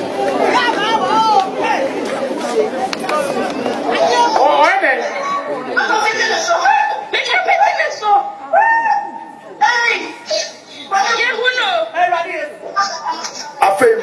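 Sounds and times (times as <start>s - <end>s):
voices talking over one another: 0.0s - 14.0s
man speaking into a microphone: 9.6s - 14.0s.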